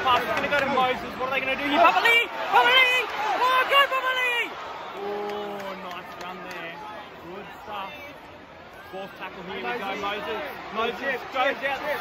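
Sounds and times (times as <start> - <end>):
stadium crowd murmur: 0.0 - 12.0
young man shouting: 1.6 - 4.5.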